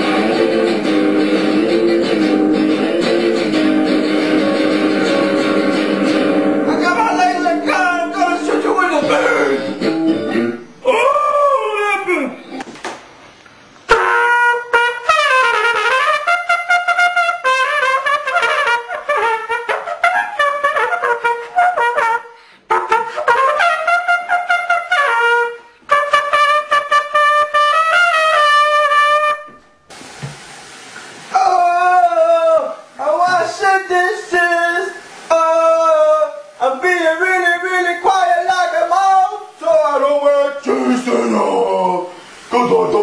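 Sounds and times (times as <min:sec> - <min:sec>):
steady hiss: 0:00.0 - 0:14.1, 0:29.5 - 0:43.0
loud trumpet note: 0:03.6 - 0:10.8, 0:13.9 - 0:29.9
man howling: 0:06.6 - 0:12.4, 0:31.3 - 0:33.4, 0:40.7 - 0:43.0.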